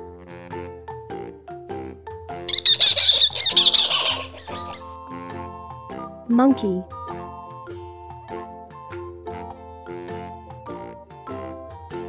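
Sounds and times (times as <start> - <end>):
light backing tune: 2.4 - 10.9
monkey chattering screech: 2.5 - 5.0.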